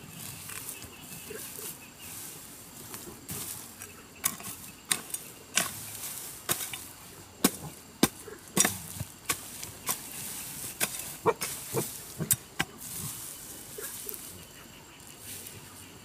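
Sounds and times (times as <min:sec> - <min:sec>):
hoe chopping into soil: 0:03.3 - 0:13.3.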